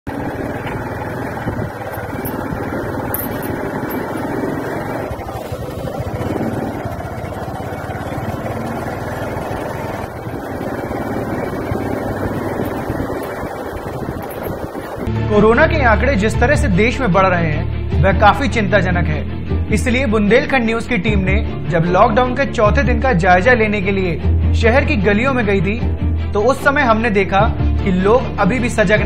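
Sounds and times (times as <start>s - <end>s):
road noise: 0.0s - 15.1s
motorcycle engine running: 0.1s - 15.1s.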